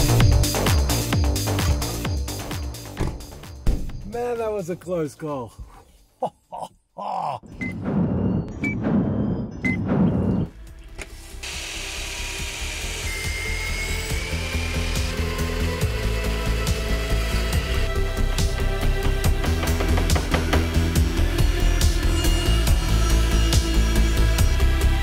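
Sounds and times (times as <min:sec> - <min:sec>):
background music: 0:00.0 - 0:05.0, 0:07.5 - 0:25.0
power tool running in bursts: 0:11.2 - 0:18.4.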